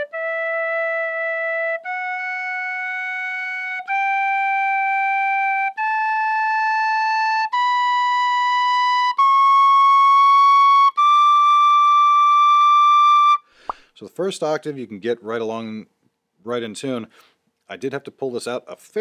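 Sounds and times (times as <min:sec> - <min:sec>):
tin whistle long held notes: 0:00.0 - 0:13.5.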